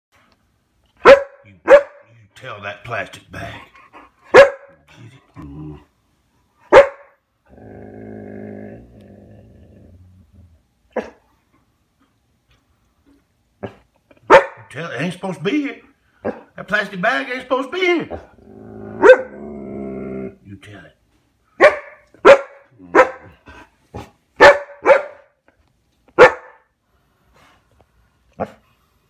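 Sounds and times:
dog barking: 1.0 - 2.1, 4.3 - 4.8, 6.7 - 7.2, 11.0 - 11.2, 13.6 - 14.7, 16.2 - 16.5, 19.0 - 19.3, 21.6 - 23.4, 24.0 - 25.3, 26.2 - 26.7
dog growling: 5.0 - 5.9, 7.5 - 11.2, 18.1 - 20.4.

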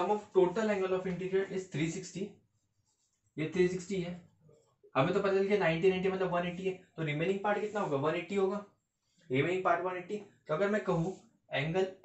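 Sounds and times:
man lecturing: 0.0 - 2.4, 3.4 - 8.7, 9.3 - 12.0.

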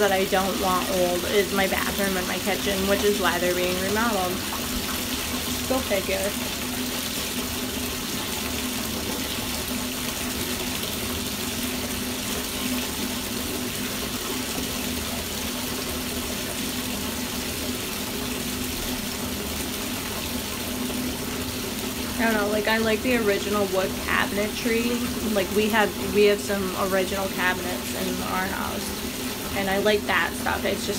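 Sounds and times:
tap water pouring into tub: 0.0 - 30.9.

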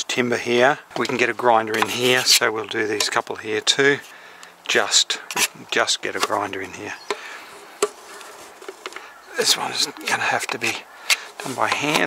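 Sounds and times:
putty knife spreading filler: 1.7 - 2.4, 11.1 - 12.0.

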